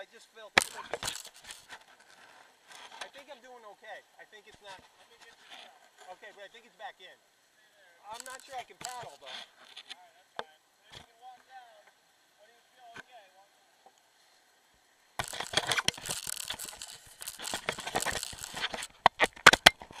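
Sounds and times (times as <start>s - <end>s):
crackling scraping rub: 0.6s - 6.7s, 8.1s - 10.0s, 15.2s - 20.0s
camera handling noise: 15.2s - 20.0s.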